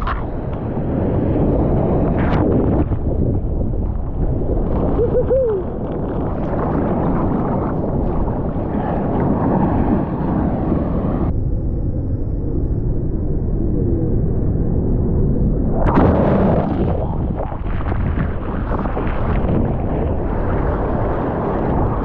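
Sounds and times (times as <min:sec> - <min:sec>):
churning water and breaking surf: 0:00.0 - 0:11.3, 0:15.8 - 0:22.0
wind buffeting microphone: 0:00.0 - 0:22.0.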